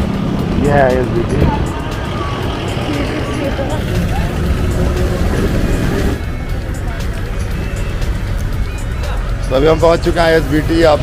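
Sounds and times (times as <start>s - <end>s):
background music: 0.0s - 11.0s
wind and road noise on microphone: 0.0s - 11.0s.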